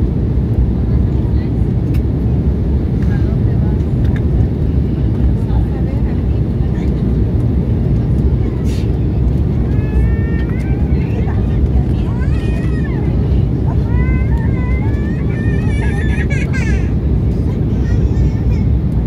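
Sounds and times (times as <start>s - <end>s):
airliner cabin engine roar: 0.0s - 19.0s
faint voices: 0.6s - 19.0s.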